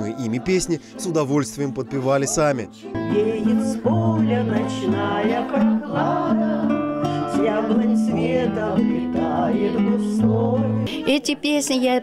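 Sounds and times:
people singing: 0:00.0 - 0:11.4
acoustic guitars: 0:00.0 - 0:12.0.

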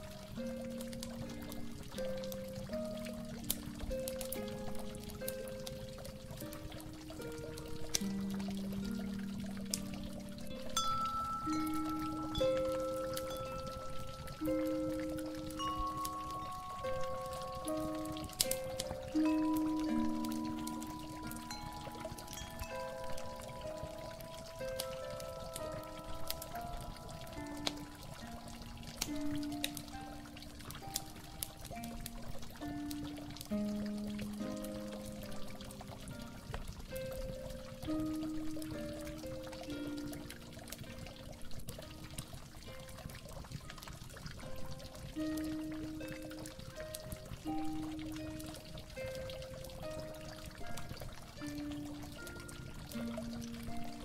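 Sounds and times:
slow soft instrumental music: 0:00.0 - 0:54.0
water dripping: 0:00.0 - 0:54.0
water pouring and trickling: 0:00.0 - 0:54.0.

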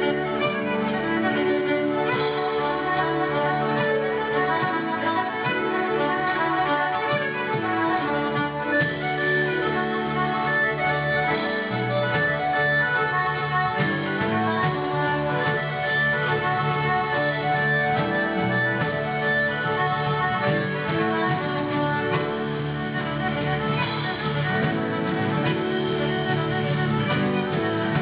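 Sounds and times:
accordion: 0:00.0 - 0:28.0
fiddle: 0:00.0 - 0:28.0
folk band playing a jig: 0:00.0 - 0:28.0.

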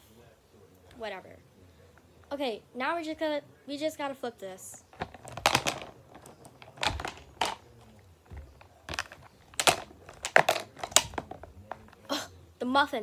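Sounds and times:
plastic container being handled: 0:04.8 - 0:12.1.

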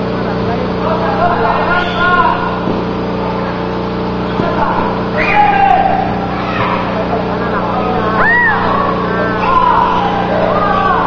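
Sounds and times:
constant low hum: 0:00.0 - 0:11.0
spectators' voices: 0:00.0 - 0:11.0.

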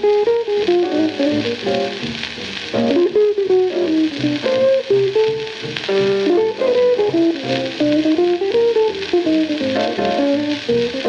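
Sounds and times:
record surface hiss and crackle: 0:00.0 - 0:11.0
small-band jazz recording: 0:00.0 - 0:11.0.

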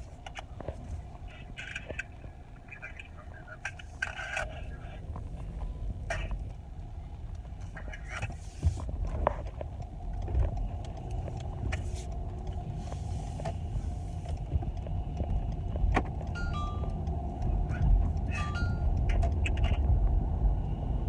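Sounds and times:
car interior road noise: 0:00.0 - 0:21.0
short high beeps: 0:16.4 - 0:17.0.

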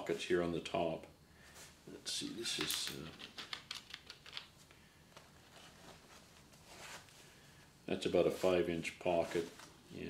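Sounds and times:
soft fabric rustle: 0:04.5 - 0:10.0.

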